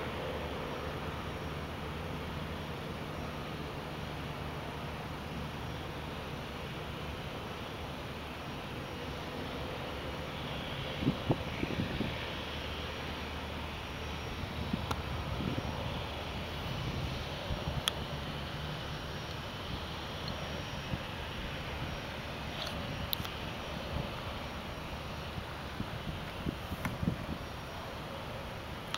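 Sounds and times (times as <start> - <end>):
propeller plane engine droning: 0.0 - 28.9.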